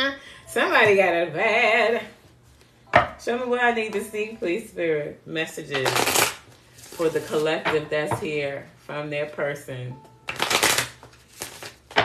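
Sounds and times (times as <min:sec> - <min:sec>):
deck of cards snapping: 0:10.3 - 0:11.9
cards shuffling: 0:10.3 - 0:12.0.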